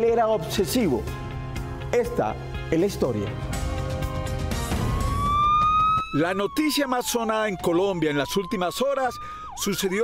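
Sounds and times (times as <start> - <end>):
background music: 0.0 - 8.6
siren wailing: 4.2 - 10.0.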